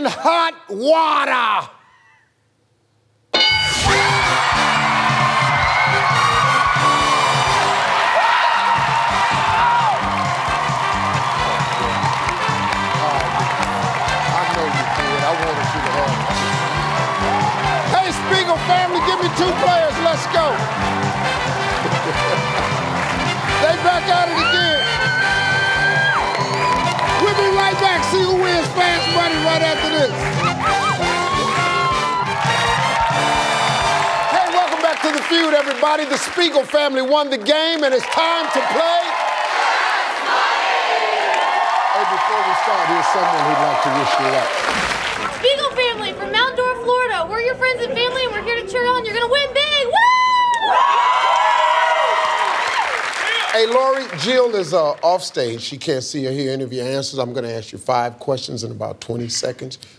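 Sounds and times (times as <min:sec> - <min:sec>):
game-show music with steady beat: 0:03.4 - 0:34.2
studio audience cheering: 0:03.4 - 0:45.9, 0:49.6 - 0:55.6
woman shouting: 0:45.4 - 0:50.7
high-pitched whoop: 0:49.9 - 0:53.0.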